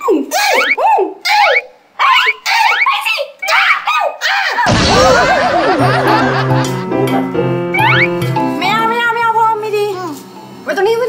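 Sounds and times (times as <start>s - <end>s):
high-pitched upward squeals: 7.7s - 8.2s.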